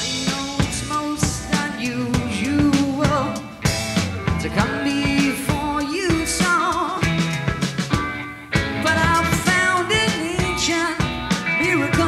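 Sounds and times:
drum hits: 0.0s - 12.0s
hard rock band playing: 0.0s - 12.0s.

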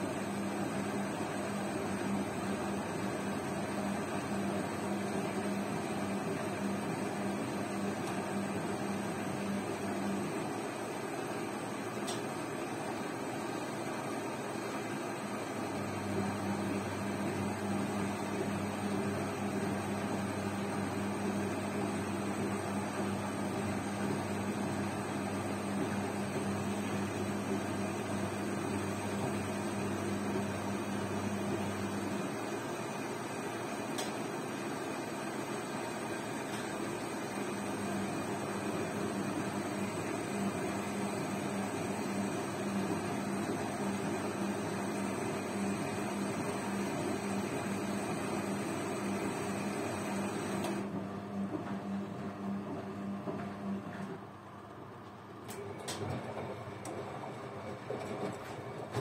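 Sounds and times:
washing machine humming: 0.0s - 59.0s.

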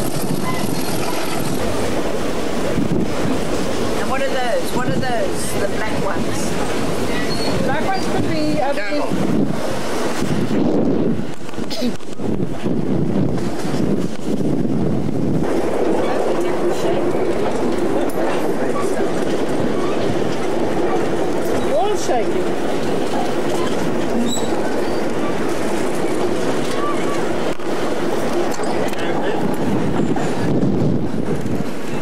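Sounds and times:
train wheels rumbling on rails: 0.0s - 32.0s
wheel squeal: 0.2s - 1.4s, 7.1s - 8.2s, 23.5s - 25.4s.

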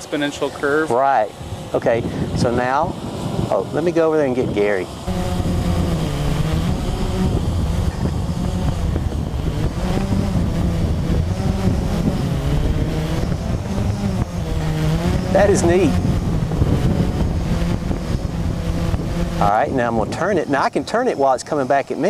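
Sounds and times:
quadcopter propellers whirring: 0.0s - 22.0s.

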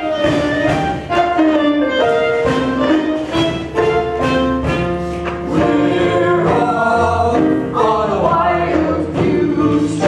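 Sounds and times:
instrumental accompaniment: 0.0s - 10.0s
group singing: 5.4s - 10.0s.

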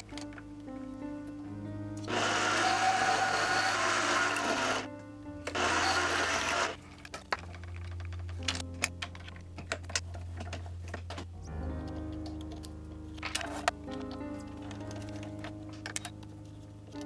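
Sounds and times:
background music: 0.0s - 17.0s
lathe running: 2.1s - 4.9s, 5.5s - 6.8s
metal parts clicking: 5.4s - 11.2s, 12.2s - 16.3s.

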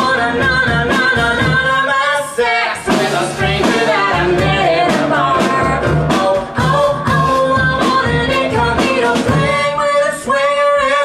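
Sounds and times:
instrumental accompaniment: 2.8s - 10.0s.

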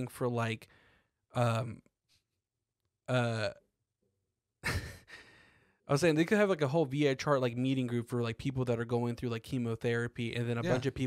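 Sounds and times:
man talking: 0.0s - 0.6s, 1.4s - 1.8s, 3.1s - 3.6s, 5.9s - 11.0s.

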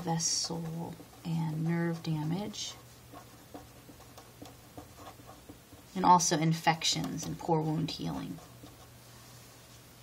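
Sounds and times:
felt-tip marker writing on paper: 2.1s - 5.9s.

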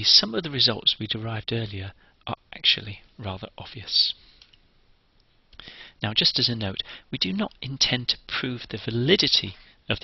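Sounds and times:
person speaking: 0.0s - 4.2s, 6.0s - 10.0s.

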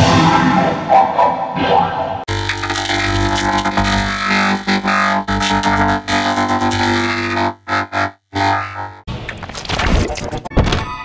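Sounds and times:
buzzy distorted music tones: 2.3s - 9.1s
choppy thuds and sound effects: 2.3s - 9.1s.

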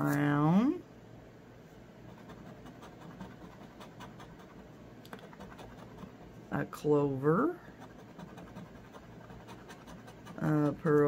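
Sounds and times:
coin scratching lottery ticket: 2.1s - 4.6s, 5.2s - 6.2s, 7.7s - 11.0s.

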